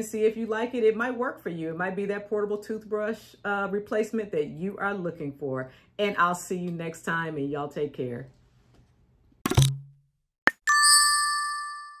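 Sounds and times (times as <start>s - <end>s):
bell-like ding: 10.5s - 12.0s.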